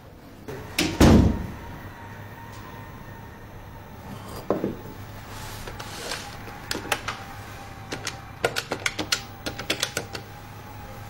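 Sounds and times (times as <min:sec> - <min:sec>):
door closing with heavy thud: 0:00.7 - 0:01.6.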